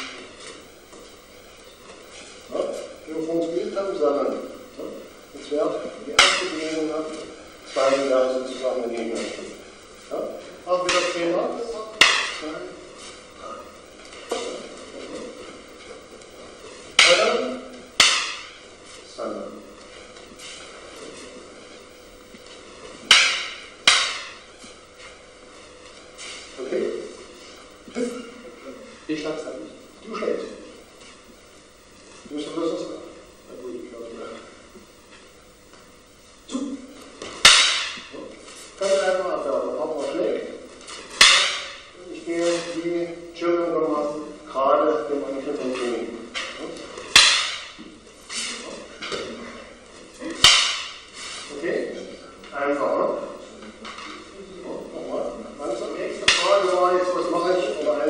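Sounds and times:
wooden sticks clacking: 0:06.2 - 0:06.8, 0:12.0 - 0:12.4, 0:17.0 - 0:17.4, 0:18.0 - 0:18.6, 0:23.0 - 0:24.4, 0:37.2 - 0:38.1, 0:41.2 - 0:41.8, 0:46.4 - 0:47.8, 0:50.3 - 0:51.0.

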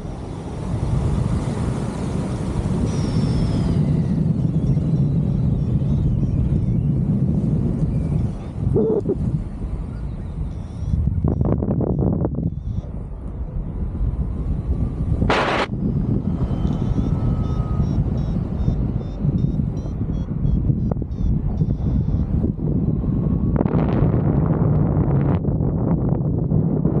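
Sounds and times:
rush of wind: 0:00.0 - 0:27.0
wind buffeting microphone: 0:00.0 - 0:27.0.

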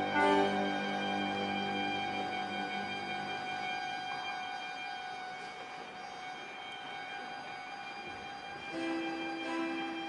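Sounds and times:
low orchestral chord: 0:00.0 - 0:07.8, 0:08.6 - 0:10.0
string orchestra sustained note: 0:00.0 - 0:10.0.

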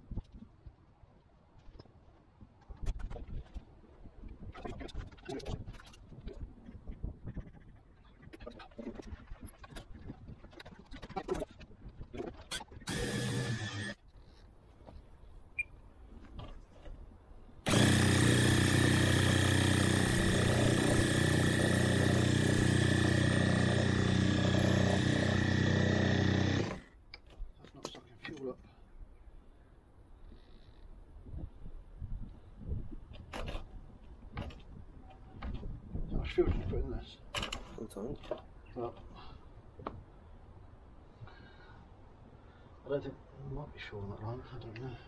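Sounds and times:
electric starter spinning engine: 0:12.9 - 0:14.0, 0:17.7 - 0:26.9.

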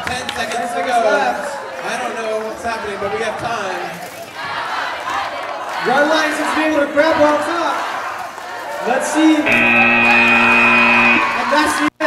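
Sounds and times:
buzzer blaring: 0:09.4 - 0:11.9.

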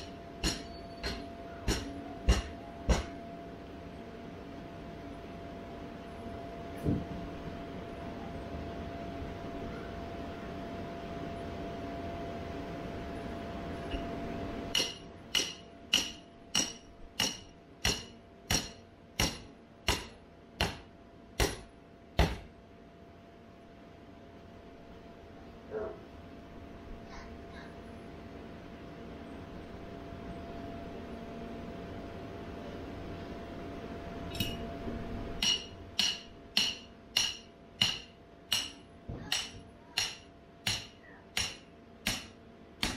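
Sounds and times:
steady hum: 0:00.0 - 0:42.9
hammer striking stake: 0:00.4 - 0:03.1, 0:14.7 - 0:22.5, 0:35.4 - 0:42.9.

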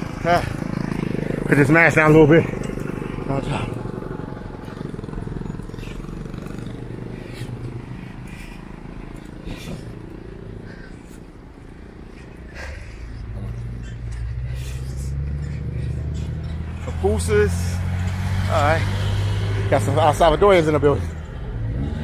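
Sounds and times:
bicycle road rumble: 0:00.0 - 0:22.0
motor vehicle engine hum: 0:00.0 - 0:22.0.

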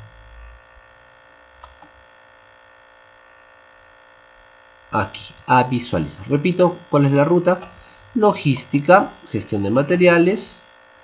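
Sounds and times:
faint electrical mains hum: 0:00.0 - 0:11.0.

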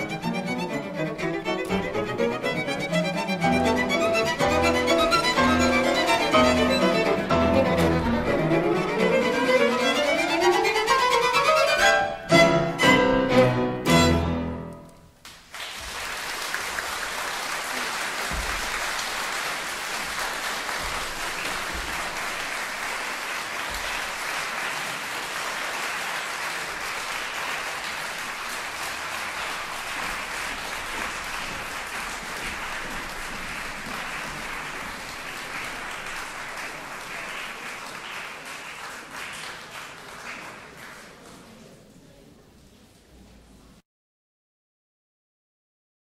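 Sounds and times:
audience applauding: 0:00.0 - 0:10.9, 0:15.2 - 0:41.9.

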